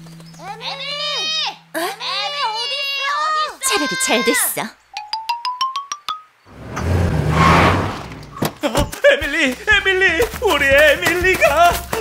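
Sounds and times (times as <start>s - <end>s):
whoosh: 6.5s - 8.4s.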